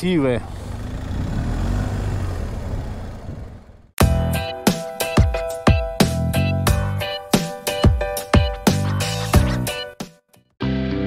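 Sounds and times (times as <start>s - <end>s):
motorcycle engine rumble: 0.0s - 4.0s.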